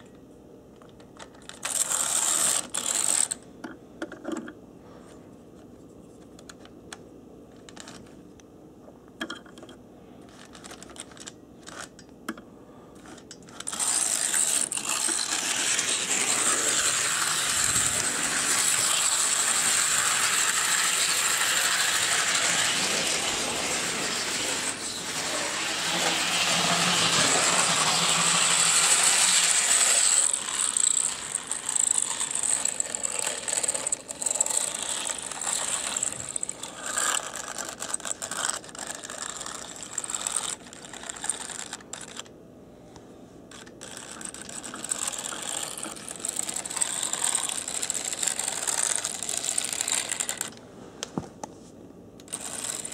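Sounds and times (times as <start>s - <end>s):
model locomotive motor whirring: 1.5s - 3.4s, 13.0s - 42.3s, 43.5s - 50.6s, 52.2s - 52.9s
ratchety clatter of wheels: 13.0s - 42.3s, 43.5s - 50.6s, 52.3s - 52.9s.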